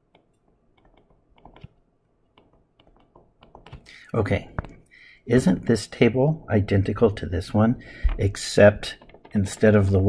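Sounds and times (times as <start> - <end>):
stylus tapping on tablet screen: 0.0 - 3.9.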